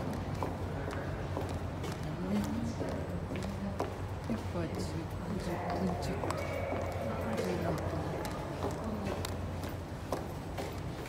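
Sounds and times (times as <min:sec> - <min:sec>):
indistinct voices: 0:00.0 - 0:09.8.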